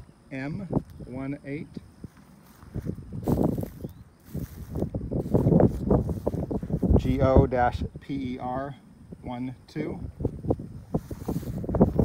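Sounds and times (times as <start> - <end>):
footsteps through dry grass: 1.9 - 7.2, 10.3 - 12.0
stems brushing and rustling: 2.0 - 7.2, 10.8 - 12.0.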